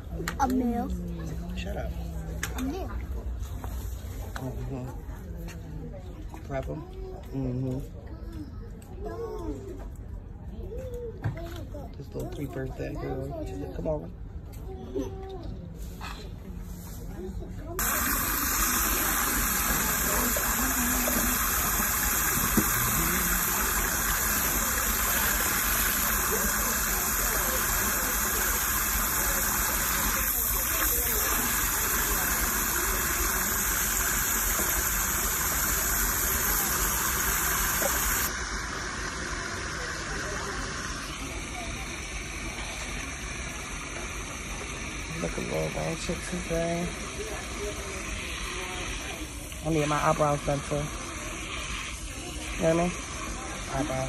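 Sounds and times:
faucet spraying water into foot bath: 17.8s - 54.0s.

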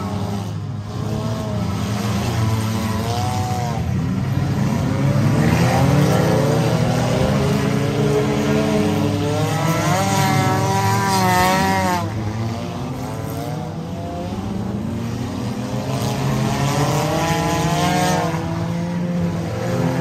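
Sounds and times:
race car engines revving: 0.0s - 20.0s.

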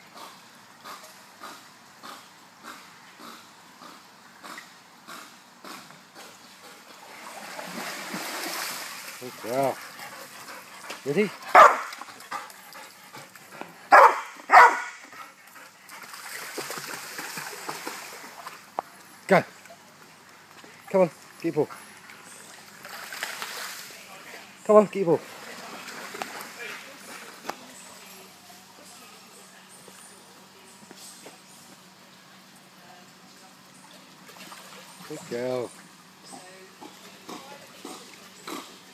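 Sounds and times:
low background noise: 0.0s - 38.9s
dog barking: 11.5s - 11.9s, 13.9s - 15.0s.

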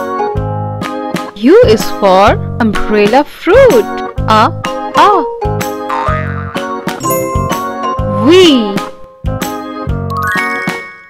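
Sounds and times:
background music: 0.0s - 11.0s
rising run of bell-like chimes: 7.0s - 7.7s, 10.2s - 11.0s.

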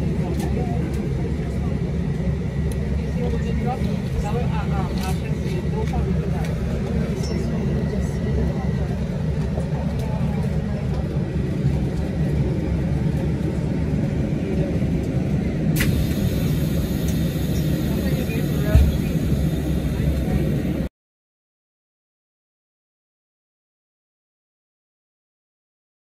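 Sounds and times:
low engine rumble: 0.0s - 20.9s
muffled voices: 0.0s - 20.9s.

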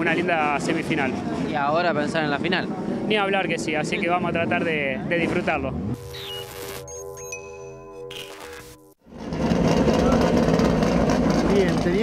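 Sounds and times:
sustained electronic tones: 5.9s - 9.0s
race car engines running: 9.1s - 12.0s.

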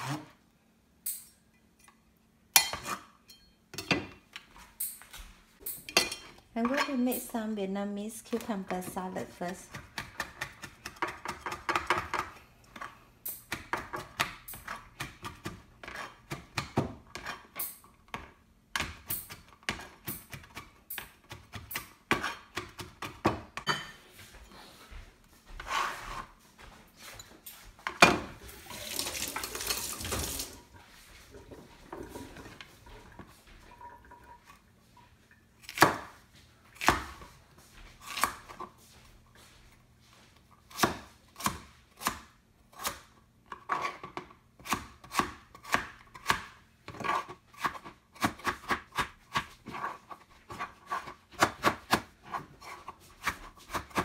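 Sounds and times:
knife chopping on plastic board: 9.7s - 12.3s, 13.5s - 17.3s, 40.7s - 49.9s, 50.5s - 54.0s.

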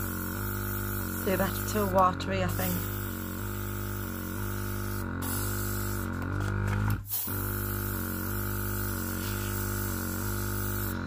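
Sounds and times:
airbrush spraying hiss: 7.0s - 11.0s.

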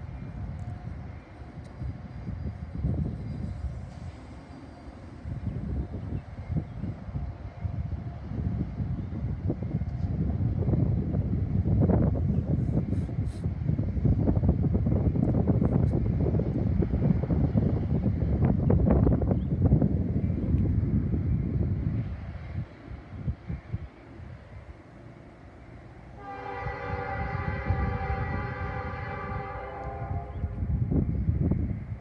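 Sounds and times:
train rumble pulling away: 0.0s - 32.0s
wind buffeting microphone: 0.0s - 32.0s.

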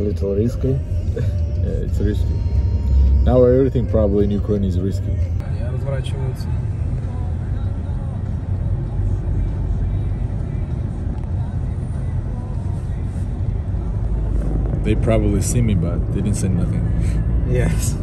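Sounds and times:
car engine and tyre rumble: 0.0s - 18.0s.

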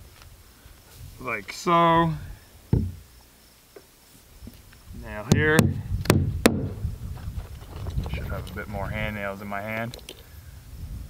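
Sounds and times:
hammer striking nail into wood: 5.3s - 6.8s.

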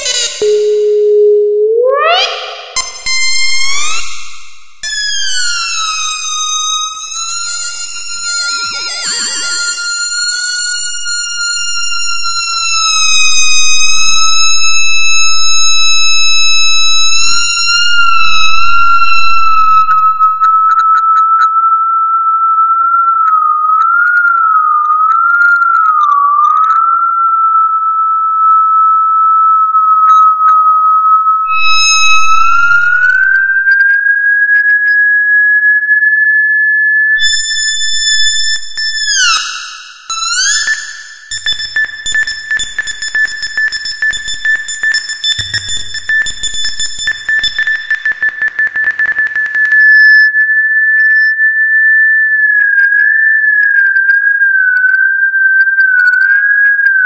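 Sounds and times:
high electronic sine tone: 0.0s - 24.0s, 26.7s - 34.1s, 37.2s - 52.7s.

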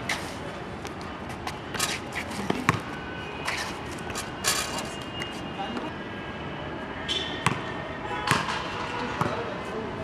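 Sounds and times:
basketball bouncing on court: 2.5s - 3.0s, 7.4s - 7.7s.

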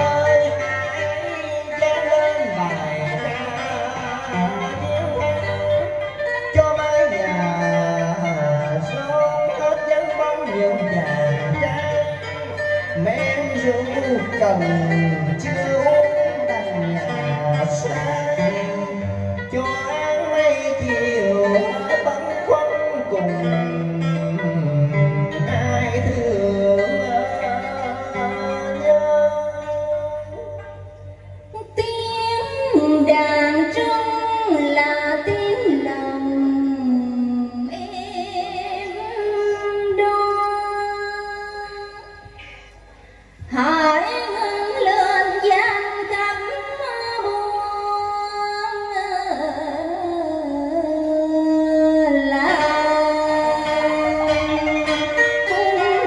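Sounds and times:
woman singing into microphone: 31.5s - 42.7s, 43.4s - 56.0s.

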